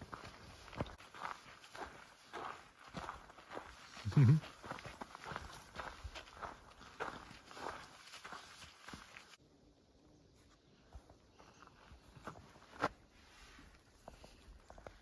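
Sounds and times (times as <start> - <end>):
footsteps on dirt trail: 0.0 - 9.4, 10.4 - 15.0
person saying mm-hmm: 4.0 - 4.4.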